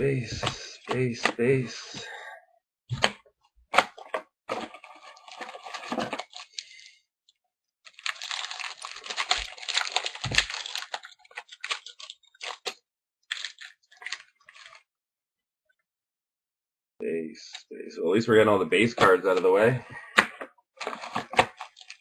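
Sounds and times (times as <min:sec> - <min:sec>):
card wrapper crinkling and tearing: 0:03.8 - 0:06.9, 0:07.9 - 0:14.8, 0:20.8 - 0:22.0.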